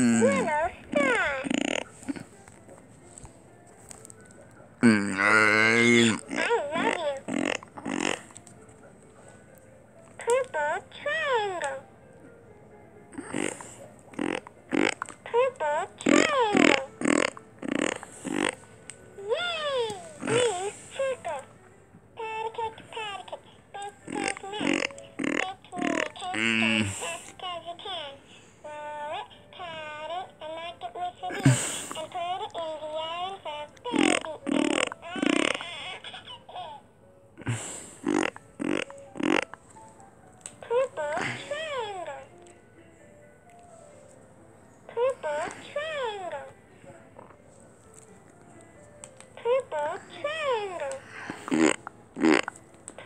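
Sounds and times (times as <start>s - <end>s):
person laughing and babbling: 0.0s - 1.5s, 19.3s - 21.4s, 31.2s - 32.6s, 40.8s - 42.1s
talking toy squeaky voice calls: 0.0s - 1.9s, 15.3s - 17.3s, 22.2s - 26.8s, 32.2s - 36.8s.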